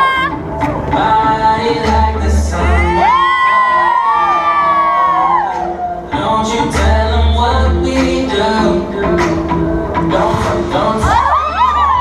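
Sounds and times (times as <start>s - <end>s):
hip-hop song over speakers: 0.0s - 12.0s.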